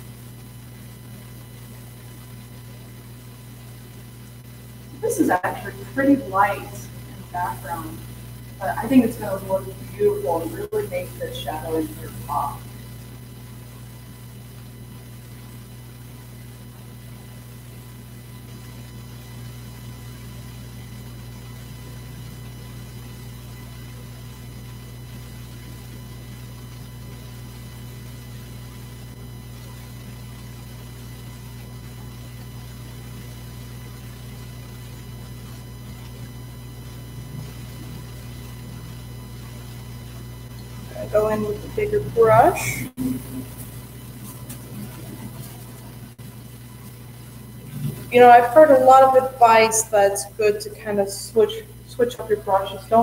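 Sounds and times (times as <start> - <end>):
electrical hum: 0.0 - 53.0.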